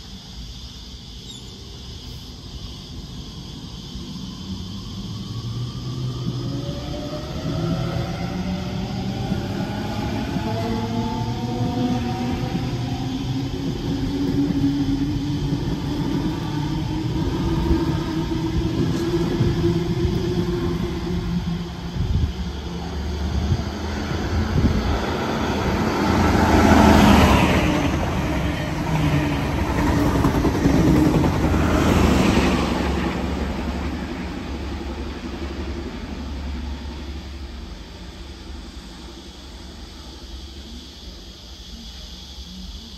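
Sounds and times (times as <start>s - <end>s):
train passing with rumble: 0.0s - 42.9s.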